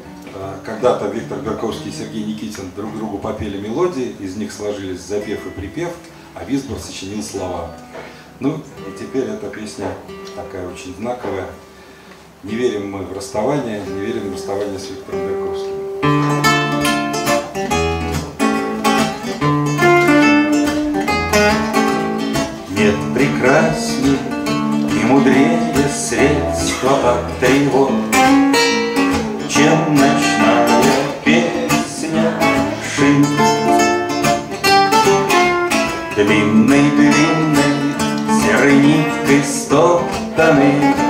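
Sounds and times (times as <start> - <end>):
acoustic guitars plucking: 0.0 - 41.0.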